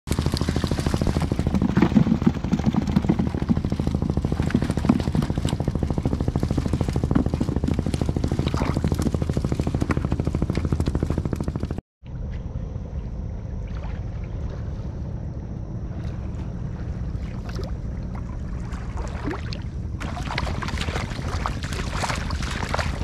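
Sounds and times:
boat engine chugging: 0:00.1 - 0:11.8, 0:12.6 - 0:23.0.

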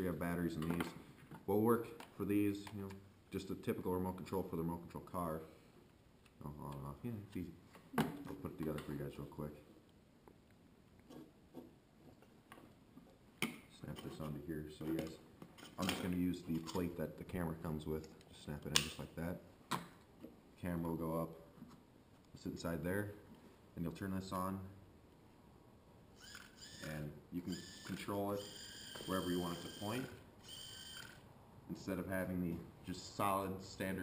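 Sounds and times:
small electric motor whine: 0:26.2 - 0:26.9, 0:27.5 - 0:31.2.

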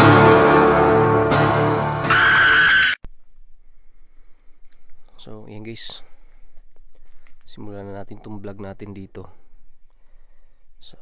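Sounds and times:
night insects trilling: 0:02.1 - 0:11.0.

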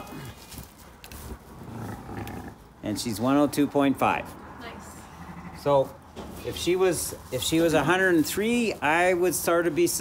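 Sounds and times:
handling sounds in straw: 0:00.0 - 0:02.0
sheep calling: 0:05.1 - 0:05.7.

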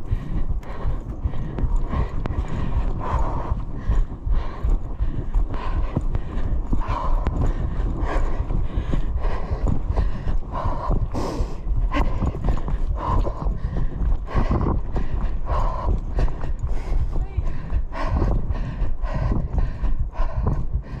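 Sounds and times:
low rumble of camera movement: 0:00.0 - 0:21.0
running footsteps on dirt trail: 0:00.0 - 0:21.0.

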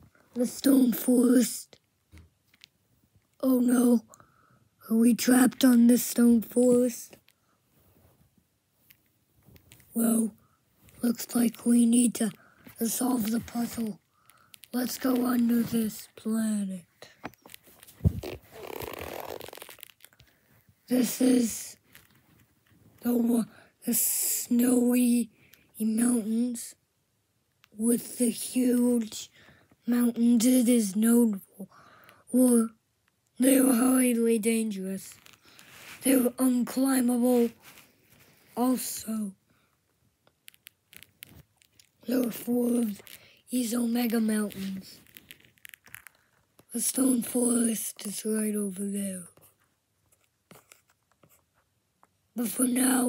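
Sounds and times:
soft handling clicks and rustles: 0:01.8 - 0:03.4, 0:07.1 - 0:10.0, 0:10.7 - 0:16.2, 0:17.0 - 0:20.9, 0:21.8 - 0:23.0, 0:35.1 - 0:36.1, 0:39.7 - 0:42.0, 0:42.7 - 0:46.7, 0:49.3 - 0:52.2
fabric rubbing against microphone: 0:17.1 - 0:20.1, 0:35.1 - 0:36.4, 0:37.3 - 0:38.6, 0:40.6 - 0:46.1.

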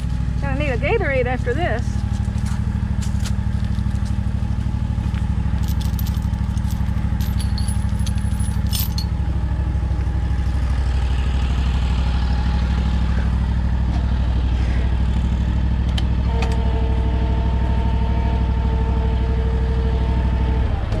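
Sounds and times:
tractor engine idling: 0:00.0 - 0:21.0
steel chain links clinking: 0:05.6 - 0:09.2.

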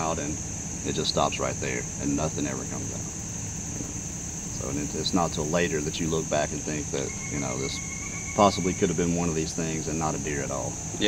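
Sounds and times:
man's voice: 0:00.0 - 0:03.0, 0:04.6 - 0:07.8, 0:08.4 - 0:11.0
insects droning: 0:00.0 - 0:11.0.

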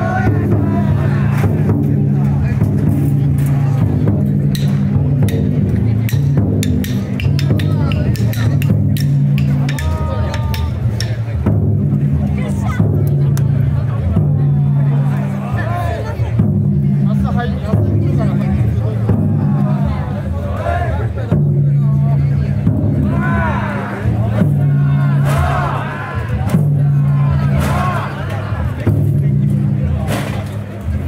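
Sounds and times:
crowd shouting and chanting: 0:00.0 - 0:31.0
large drum being struck: 0:00.0 - 0:31.0.

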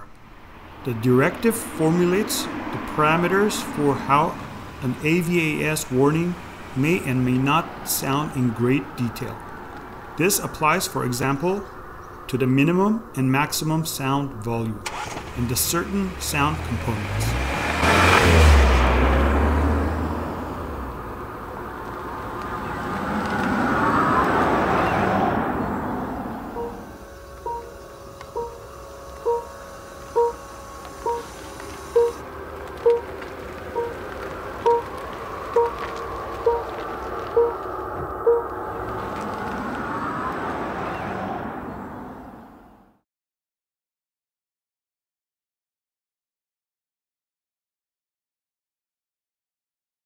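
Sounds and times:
synthetic hum gliding in pitch: 0:25.5 - 0:33.1
short electronic warning beeps: 0:26.5 - 0:32.2.

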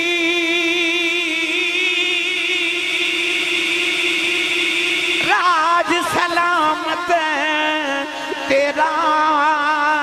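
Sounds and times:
man singing long note: 0:00.0 - 0:10.0.

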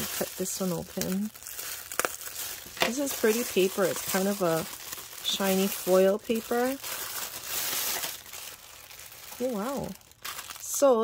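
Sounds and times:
foil gift wrap crinkling: 0:00.0 - 0:11.0.

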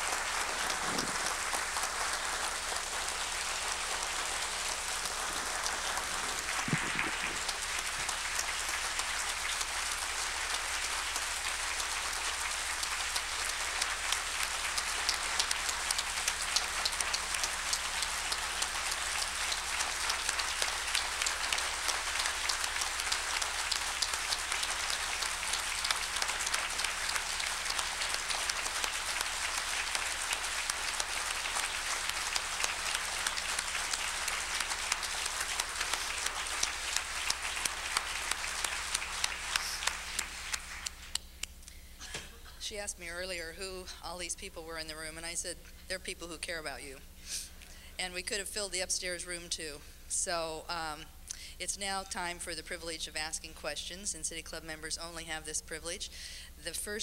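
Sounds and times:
large audience applauding: 0:00.0 - 0:41.5.

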